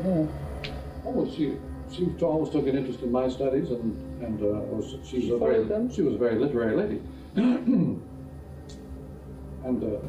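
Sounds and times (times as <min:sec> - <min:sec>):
man clearing his throat: 0:07.4 - 0:08.0.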